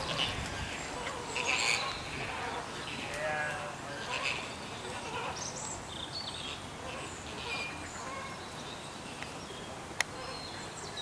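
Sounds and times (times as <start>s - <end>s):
flamingos honking: 0.0s - 5.4s.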